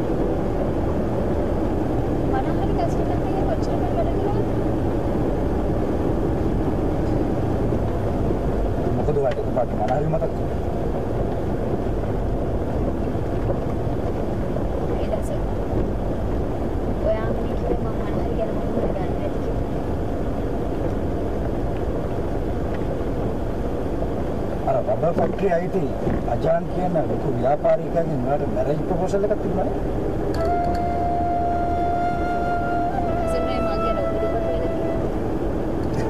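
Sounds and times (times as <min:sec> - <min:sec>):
road and engine noise in van: 0:00.0 - 0:36.0.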